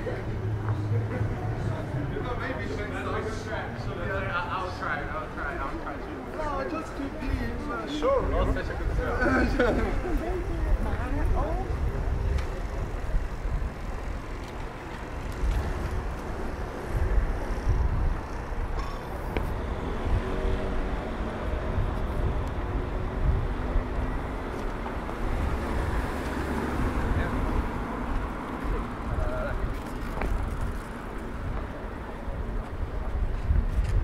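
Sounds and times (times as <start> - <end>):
faint voices of passers-by: 0.0 - 34.0
road traffic rumble: 0.0 - 34.0.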